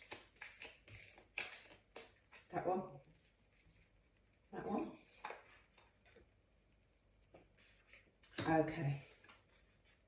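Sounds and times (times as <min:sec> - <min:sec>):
cards sliding and clicking: 0:00.0 - 0:02.2.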